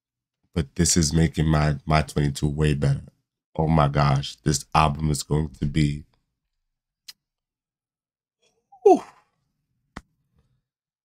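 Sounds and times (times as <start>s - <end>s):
man exclaiming: 8.8s - 9.1s.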